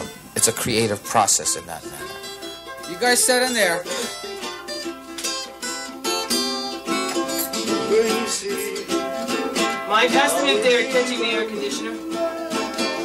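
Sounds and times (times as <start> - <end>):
plucked string instruments melody: 0.0 - 13.0.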